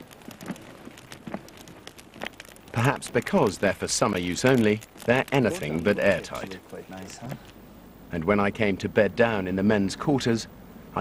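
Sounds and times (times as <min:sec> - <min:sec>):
small clicks: 0:00.0 - 0:05.4
faint rustling: 0:00.0 - 0:09.3
soft voice sounds: 0:05.1 - 0:07.5.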